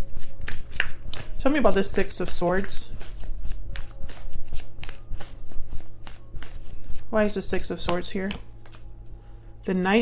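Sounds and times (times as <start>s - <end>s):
cards being shuffled: 0.0s - 8.9s.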